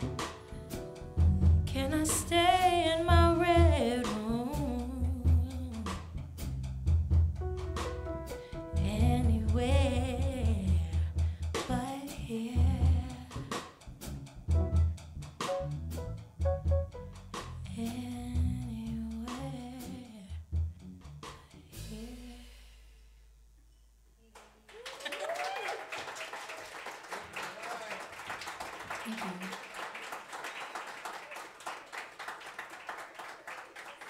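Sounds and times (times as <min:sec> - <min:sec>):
jazz trio playing: 0:00.0 - 0:22.6
audience applauding and cheering: 0:24.6 - 0:34.0.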